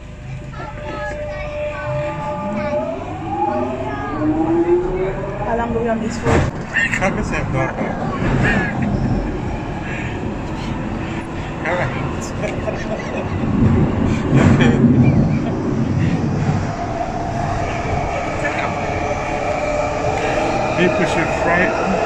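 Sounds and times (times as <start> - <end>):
train rumbling inside carriage: 0.0 - 22.0
steady two-note whine: 0.8 - 6.1.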